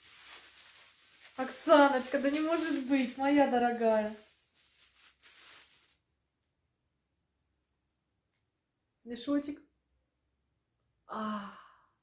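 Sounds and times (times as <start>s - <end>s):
faint rustling of packaging: 0.0s - 6.1s
woman's voice: 1.4s - 4.2s.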